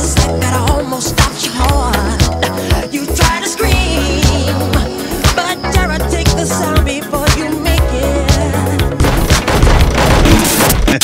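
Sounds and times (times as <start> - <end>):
cartoon soundtrack music: 0.0 - 11.0
loud dense crashing noise: 9.0 - 11.0.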